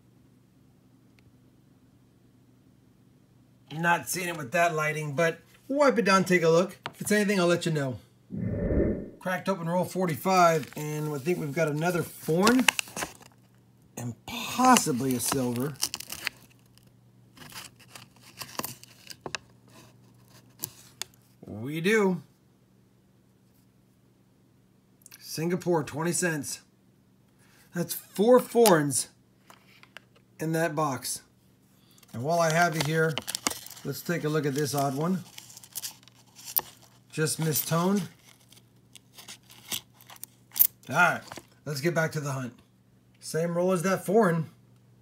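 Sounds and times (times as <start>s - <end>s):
paper wrapper rustling: 15.0s - 19.2s, 32.5s - 40.6s.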